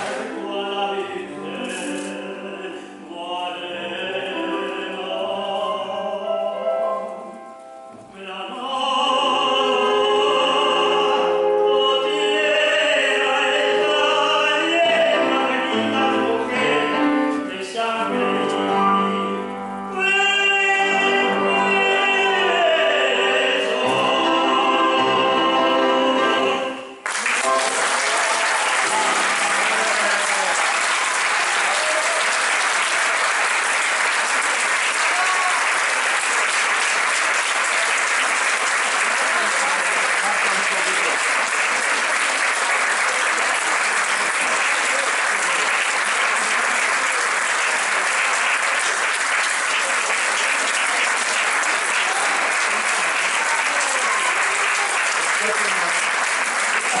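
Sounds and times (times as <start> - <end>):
audience applauding: 0.0 - 0.3, 27.0 - 57.0
singing: 8.1 - 27.0
voices among clapping: 27.0 - 57.0.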